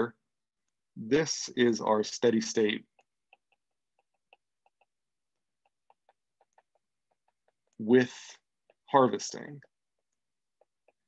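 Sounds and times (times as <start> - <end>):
stylus tapping on glass screen: 2.6 - 11.0.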